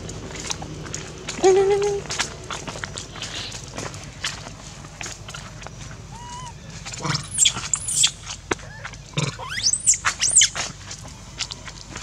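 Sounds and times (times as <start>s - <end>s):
baby monkey screaming: 6.1s - 10.6s.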